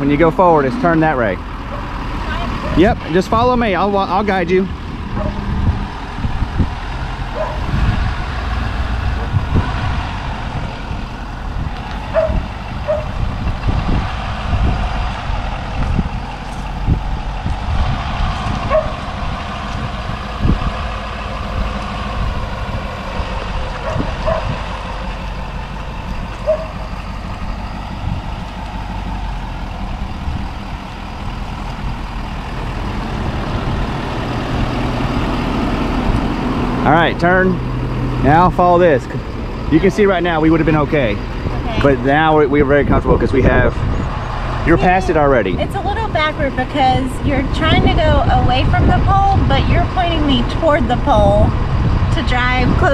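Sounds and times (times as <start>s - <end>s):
pickup truck engine running: 0.0s - 52.9s.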